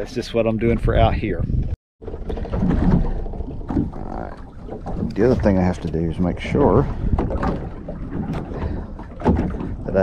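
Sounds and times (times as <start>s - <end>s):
wind noise on microphone: 0.0s - 4.2s, 4.8s - 10.0s
water against boat hull: 1.6s - 10.0s.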